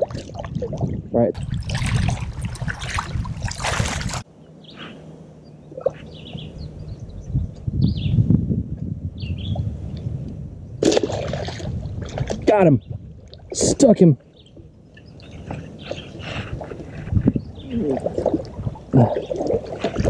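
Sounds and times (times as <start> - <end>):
footsteps splashing through water: 1.4 - 4.2, 10.8 - 12.5
birds chirping: 4.0 - 8.4, 9.1 - 10.8, 12.4 - 19.8.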